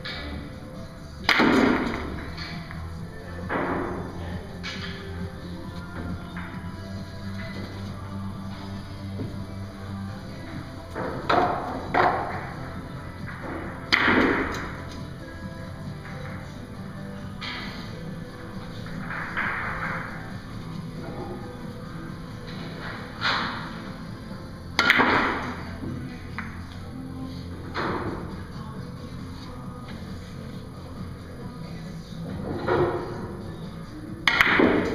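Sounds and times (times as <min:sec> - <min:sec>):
background music: 0:00.0 - 0:34.9
billiard balls knocking: 0:01.2 - 0:02.9, 0:03.5 - 0:15.2, 0:16.0 - 0:26.8, 0:27.5 - 0:28.4, 0:34.2 - 0:34.9.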